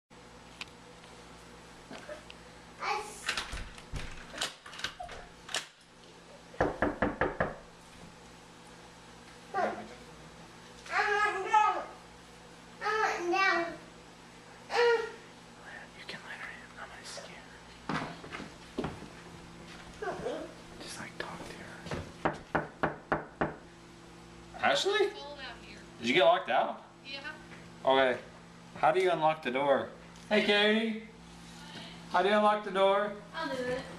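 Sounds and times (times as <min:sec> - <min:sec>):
knocks on a wooden door: 0:06.6 - 0:07.7, 0:21.9 - 0:23.6.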